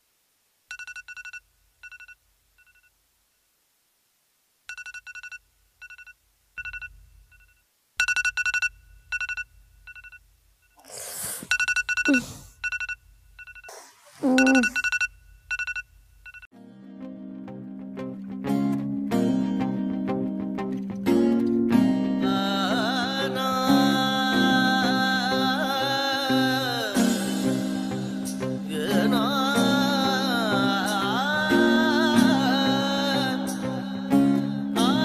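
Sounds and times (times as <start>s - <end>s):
phone ringtone high beeps: 0.7s - 2.9s, 4.7s - 10.2s, 11.5s - 16.5s.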